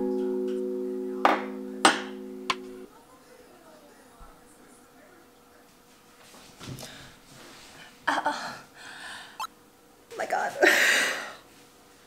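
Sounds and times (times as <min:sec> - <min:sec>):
soft background music chord: 0:00.0 - 0:02.9.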